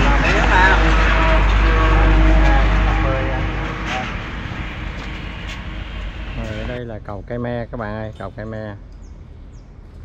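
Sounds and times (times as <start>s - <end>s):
people talking: 0.0s - 4.2s, 6.4s - 8.8s
heavy low rumble: 0.0s - 7.7s.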